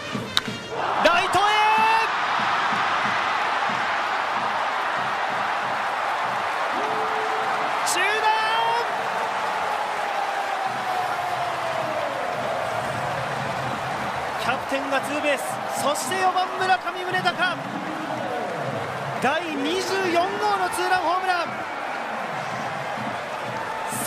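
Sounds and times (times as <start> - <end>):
stadium crowd cheering: 0.0 - 24.0.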